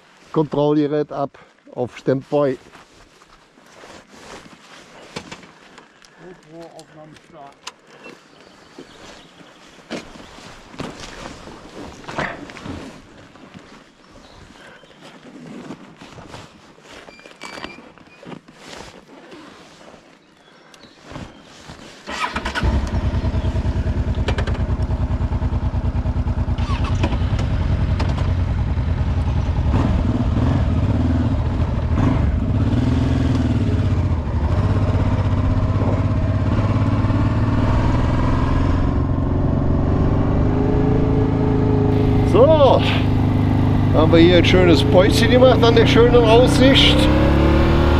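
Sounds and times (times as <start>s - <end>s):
motorcycle engine running: 22.3s - 47.9s.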